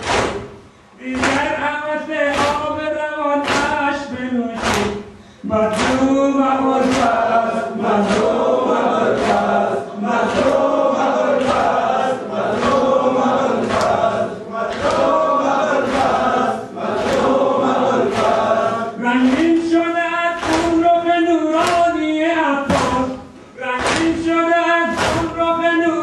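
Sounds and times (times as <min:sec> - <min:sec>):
men chanting in unison: 0:01.0 - 0:26.0.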